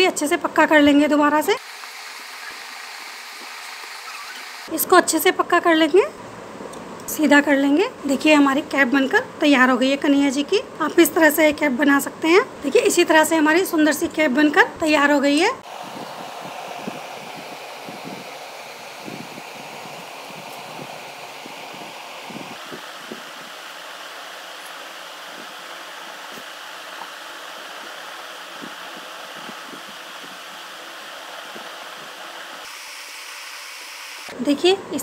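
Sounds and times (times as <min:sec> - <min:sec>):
room noise whir: 0:00.0 - 0:35.0.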